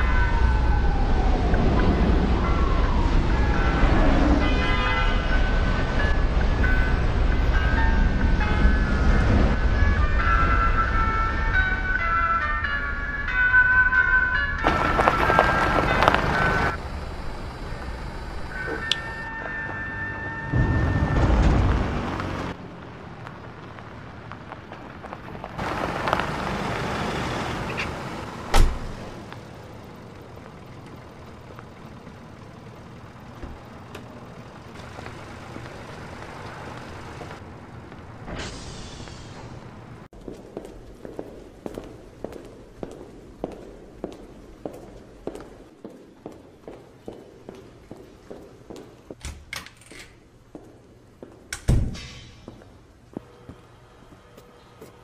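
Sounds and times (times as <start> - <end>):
vehicles passing: 0.0 - 49.2.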